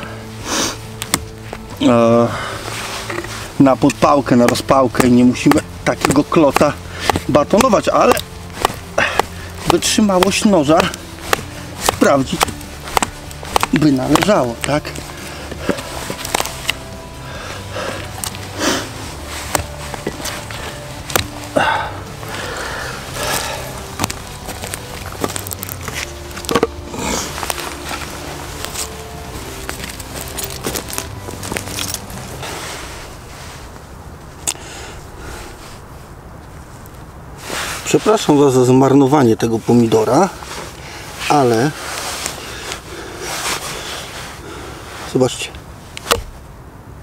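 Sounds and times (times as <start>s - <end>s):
faint background music: 0.0s - 47.0s.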